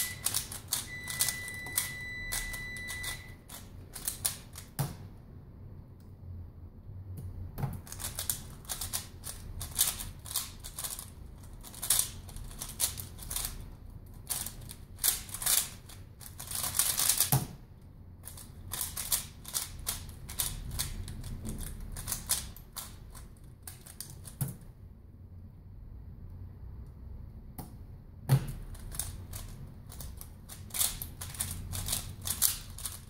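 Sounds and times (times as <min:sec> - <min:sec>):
puzzle cube clicking: 0:00.0 - 0:05.0, 0:07.8 - 0:13.6, 0:14.2 - 0:17.5, 0:18.2 - 0:24.6, 0:28.4 - 0:33.0.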